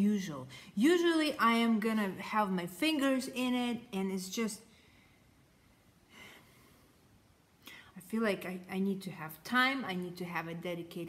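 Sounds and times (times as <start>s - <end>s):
woman breathing softly: 4.7s - 8.0s.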